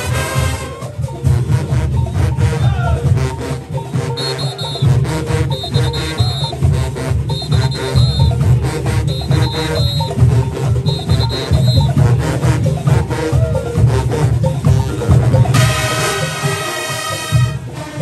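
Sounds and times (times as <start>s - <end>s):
brass section playing: 0.0s - 18.0s
heavy low beat: 0.0s - 18.0s.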